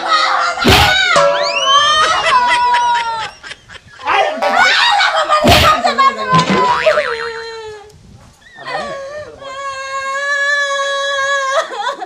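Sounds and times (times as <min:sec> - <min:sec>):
sharp thump: 0:00.6 - 0:01.4, 0:05.4 - 0:06.9.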